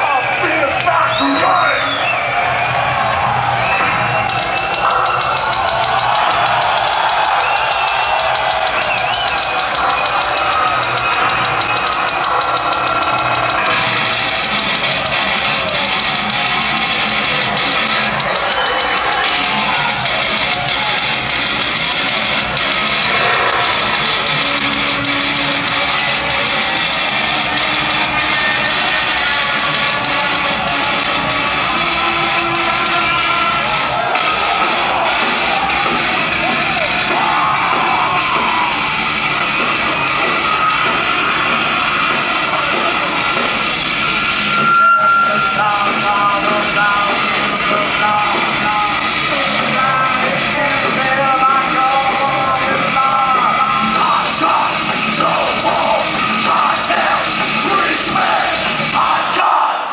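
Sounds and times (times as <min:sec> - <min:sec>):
distorted electric guitars: 0:00.0 - 0:59.4
drum kit: 0:00.0 - 0:59.5
metal band playing live: 0:00.0 - 0:59.7.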